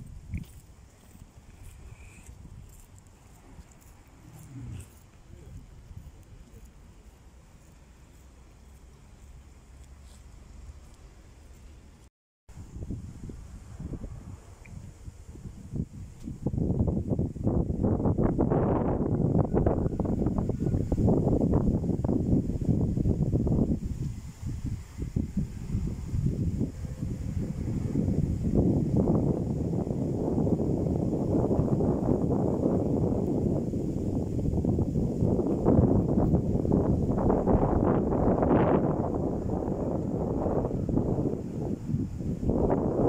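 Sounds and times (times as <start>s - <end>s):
wind buffeting microphone: 0.0s - 9.7s, 11.9s - 43.0s.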